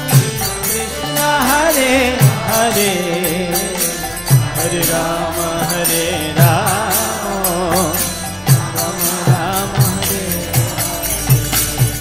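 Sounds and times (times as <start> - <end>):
devotional chanting: 0.0 - 12.0
fast high percussion strikes: 0.0 - 12.0.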